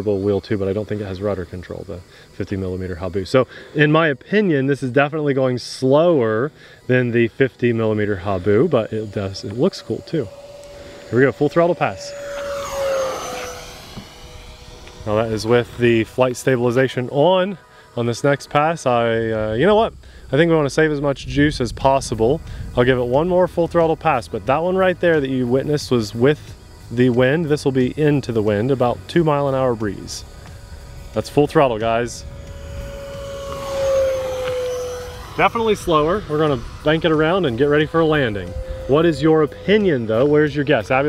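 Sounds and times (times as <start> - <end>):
model jet fan whine flying by: 0.0 - 41.0.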